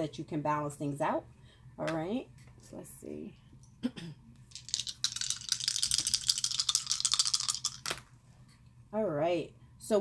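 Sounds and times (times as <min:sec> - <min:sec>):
dice rattling in hands: 0:04.5 - 0:08.0
dice landing with click: 0:04.6 - 0:08.1.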